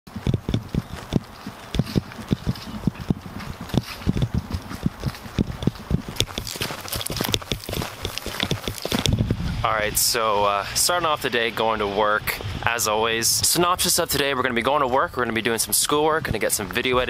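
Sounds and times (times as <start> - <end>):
dress shoe heel clicks on pavement: 0.1 - 9.2.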